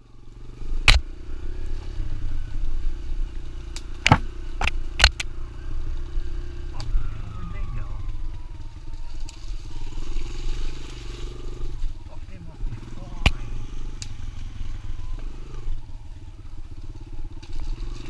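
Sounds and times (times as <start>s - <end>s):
dirt bike engine running: 0.0s - 18.0s
bike brushing through branches: 8.3s - 12.2s.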